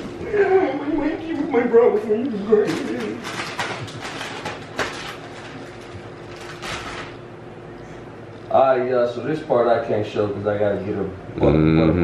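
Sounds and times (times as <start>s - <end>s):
plastic packaging crinkling: 2.5s - 7.2s.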